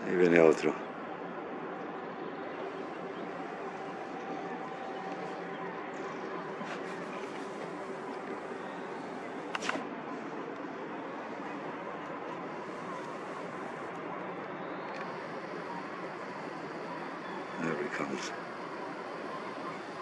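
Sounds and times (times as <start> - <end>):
outdoor background hiss: 0.0 - 20.0.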